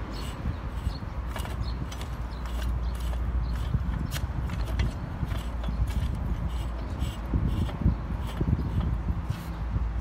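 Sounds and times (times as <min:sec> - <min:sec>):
metallic clicks and scrapes: 0:00.1 - 0:09.6.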